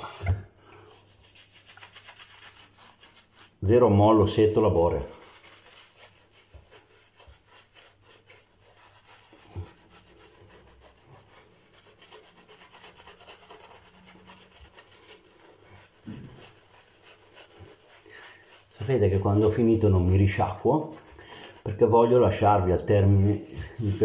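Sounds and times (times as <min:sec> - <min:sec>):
shaving brush rubbing on skin: 0:00.0 - 0:24.0.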